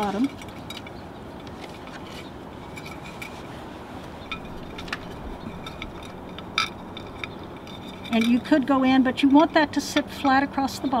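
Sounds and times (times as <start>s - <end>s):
wire clicks and scrapes on pot: 0.0s - 11.0s.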